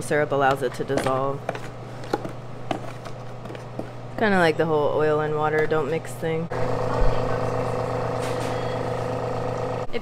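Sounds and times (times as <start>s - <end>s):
juicer motor humming: 6.5s - 10.0s.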